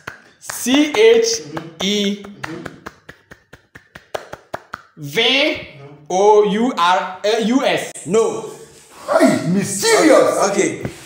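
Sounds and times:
quick light hand claps: 0.0s - 5.0s.

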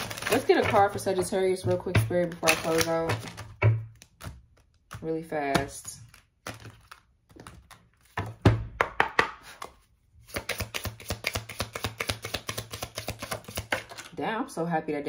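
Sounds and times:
cards shuffling clicks: 5.6s - 8.4s, 9.5s - 14.1s.

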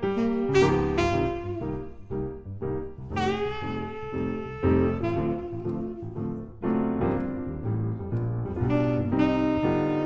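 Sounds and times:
saxophone long note: 0.0s - 2.3s, 3.1s - 6.4s, 8.6s - 10.0s
jazz piano: 0.0s - 10.0s.

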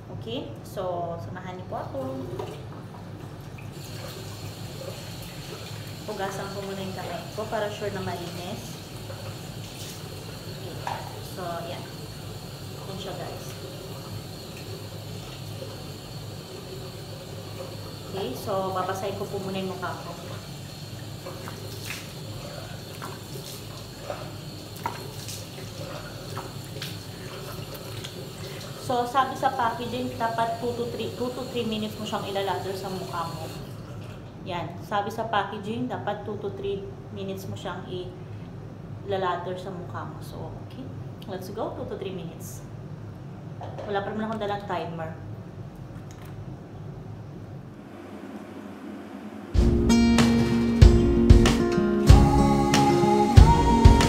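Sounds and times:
tap water running into sink: 2.3s - 34.0s
water splashing: 16.6s - 28.8s
steady low hum: 36.3s - 51.3s.

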